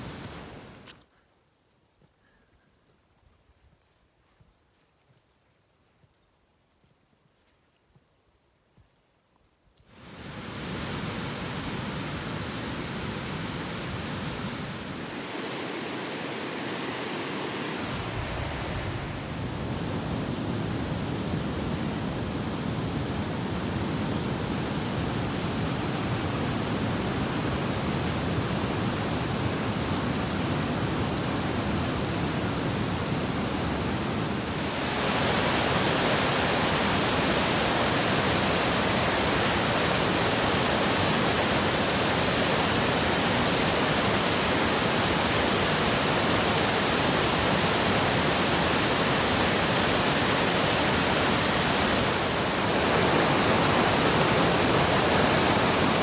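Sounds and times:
rushing waterfall: 0.0s - 0.9s, 9.9s - 56.0s.

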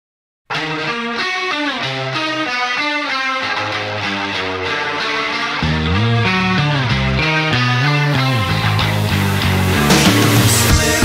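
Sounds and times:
electric guitar riff sliding down: 0.5s - 11.0s
low held bass note: 5.6s - 10.8s.

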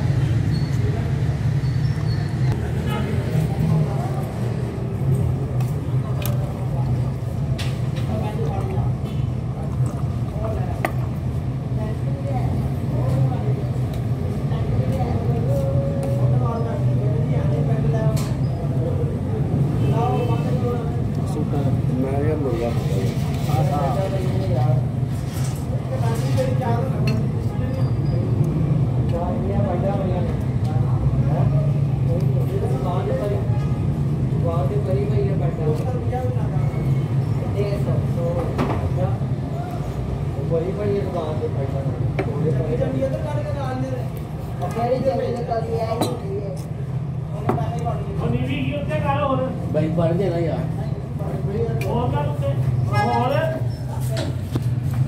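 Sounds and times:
background chatter: 0.0s - 55.0s.

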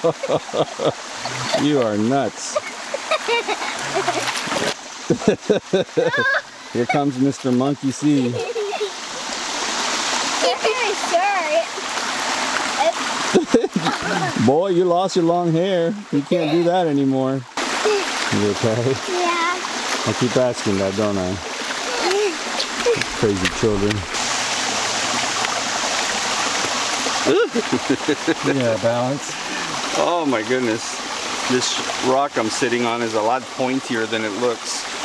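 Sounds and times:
creek running over rocks: 0.0s - 35.0s
feet splashing through water: 2.6s - 4.9s, 21.4s - 28.6s
person's voice: 21.9s - 24.1s.

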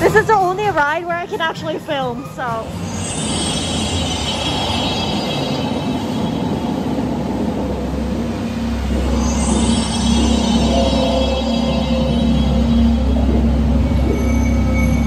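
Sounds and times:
low ride rumble: 0.0s - 15.0s
loud music and sound effects: 2.6s - 15.0s.

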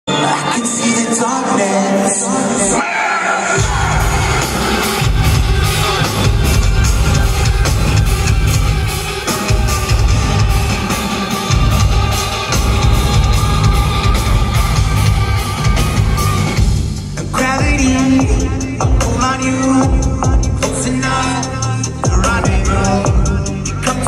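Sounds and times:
live rock band playing: 3.4s - 24.0s.

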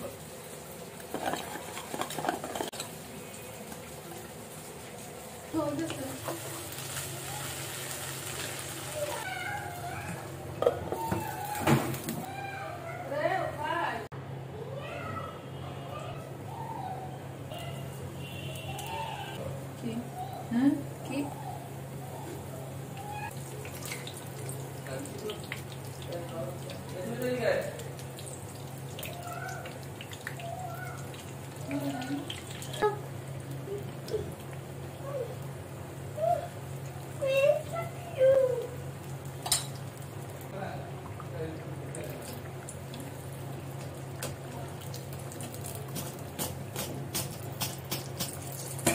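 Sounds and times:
faint frying sizzle: 0.0s - 14.1s, 15.8s - 48.9s
spatula stirring in pan: 1.0s - 3.0s.

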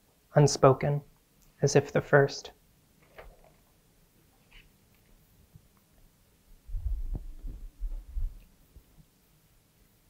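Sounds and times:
muffled thuds on microphone: 6.7s - 8.4s.

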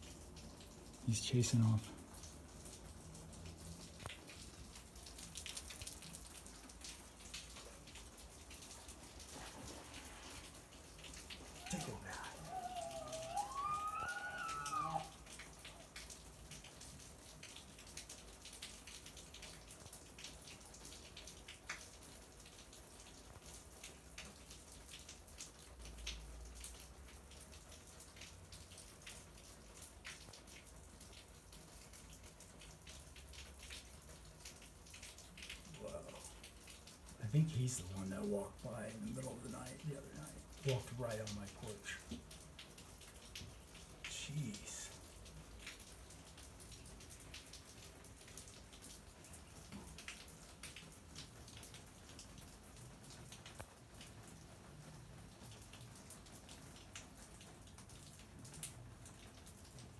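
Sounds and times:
faint water splashing: 0.0s - 19.4s, 32.9s - 59.9s
elk whistling call: 11.6s - 15.1s.

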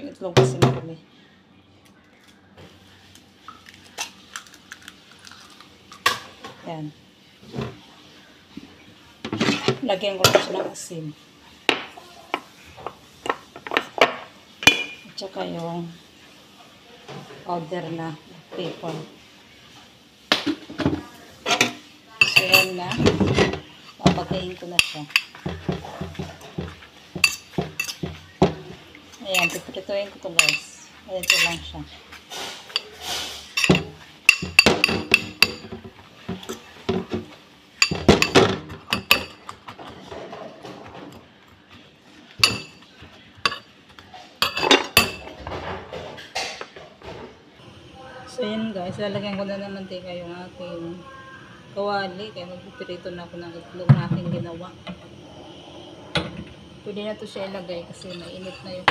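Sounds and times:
metal spoon clinking in metal bowl: 21.6s - 23.2s, 27.2s - 28.1s, 29.2s - 29.8s, 30.4s - 31.7s, 33.6s - 35.8s, 42.4s - 42.8s, 57.9s - 58.9s.

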